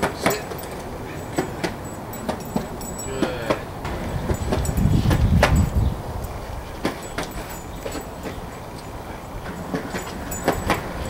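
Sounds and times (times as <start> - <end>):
skateboard clicks and knocks: 0.0 - 5.6, 6.7 - 8.5, 9.4 - 11.0
skateboard wheels rolling on concrete: 0.0 - 11.0.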